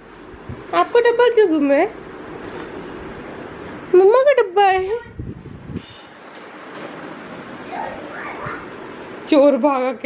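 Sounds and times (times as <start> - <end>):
faint high-pitched child's voice: 7.6 - 8.8.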